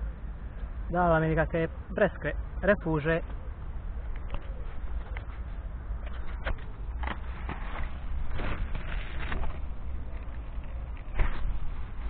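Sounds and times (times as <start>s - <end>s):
plastic bag rustling and crinkling: 7.0s - 12.0s.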